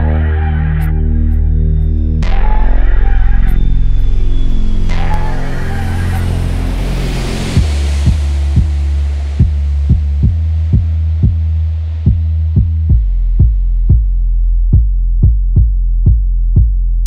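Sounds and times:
loud sustained bassline: 0:00.0 - 0:17.0.

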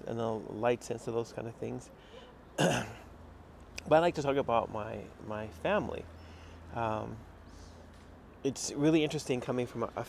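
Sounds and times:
man coughing: 0:02.6 - 0:03.1.

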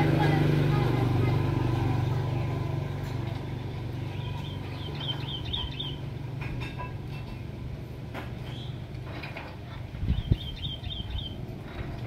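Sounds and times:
myna bird chirping: 0:04.0 - 0:06.2, 0:10.0 - 0:11.5.

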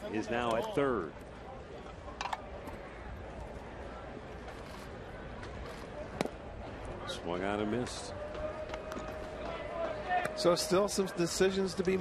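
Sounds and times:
murmur of large crowd: 0:00.0 - 0:12.0.

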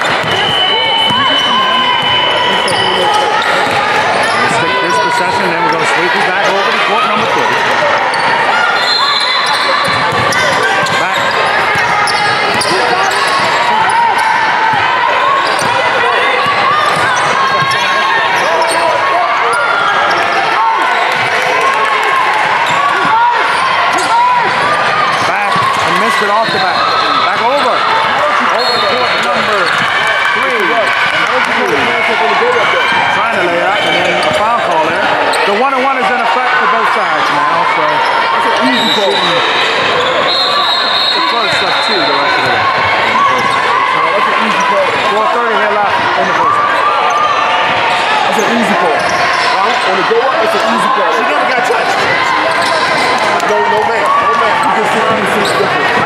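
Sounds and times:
crowd of overlapping voices: 0:00.0 - 0:56.0.

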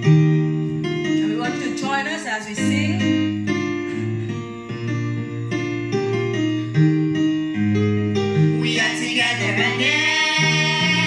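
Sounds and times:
electric keyboard: 0:00.0 - 0:11.0
girls singing into microphones: 0:08.6 - 0:11.0.

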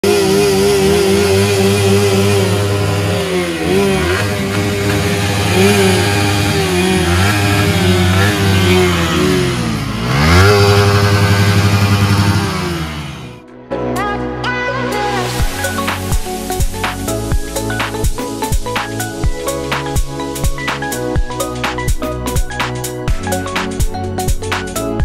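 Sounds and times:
motorcycle engines revving: 0:00.0 - 0:13.4, 0:15.3 - 0:25.0
electronic music: 0:13.4 - 0:25.0.

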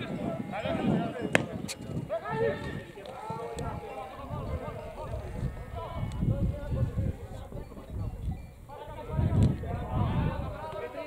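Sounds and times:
distant shouts and calls: 0:00.0 - 0:11.0.

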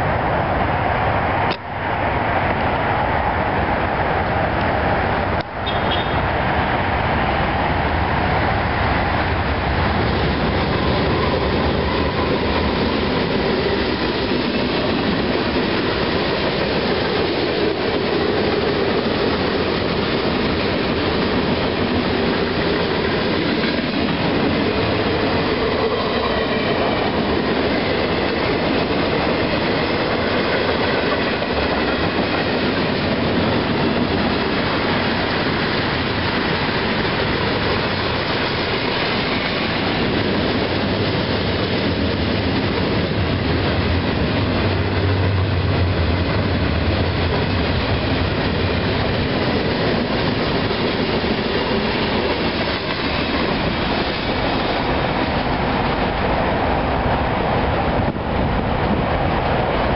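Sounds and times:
train wheels rolling on rail: 0:00.0 - 0:59.9.

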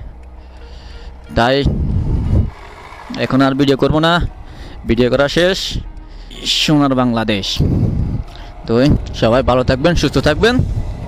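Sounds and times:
motorcycle running: 0:00.0 - 0:11.0
truck engine rumble: 0:00.0 - 0:11.0.

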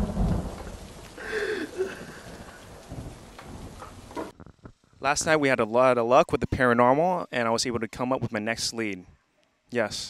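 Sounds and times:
deep thunder-like rumble: 0:00.0 - 0:04.3
rain-like hiss: 0:00.0 - 0:05.9
man's strained cry: 0:01.2 - 0:02.3.

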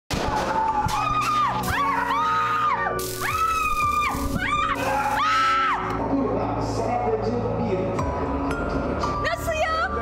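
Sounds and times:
people screaming in fright: 0:00.1 - 0:06.0
background music: 0:00.1 - 0:10.0.

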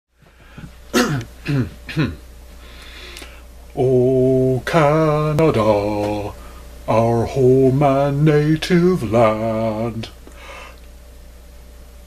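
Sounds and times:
man clearing his throat: 0:00.9 - 0:02.2.

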